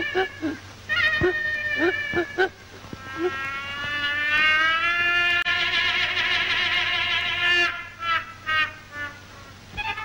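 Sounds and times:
cartoon character sobbing: 0.0s - 0.6s, 1.2s - 2.6s
cartoon character wailing: 0.0s - 4.4s.

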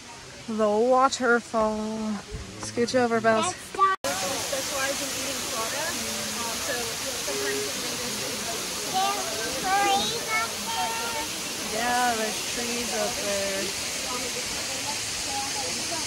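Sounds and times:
people talking: 0.0s - 16.0s
waterfall rushing: 2.2s - 16.0s.

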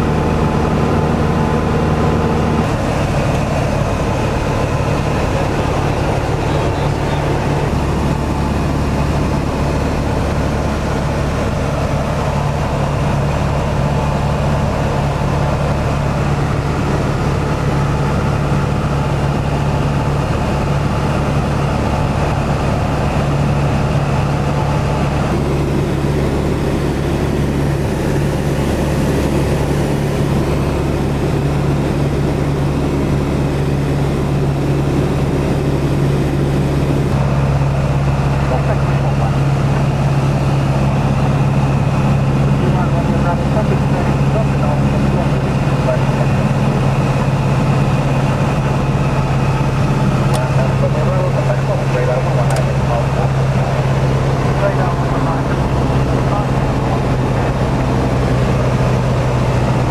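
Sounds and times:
propeller plane engine droning: 0.0s - 59.9s.

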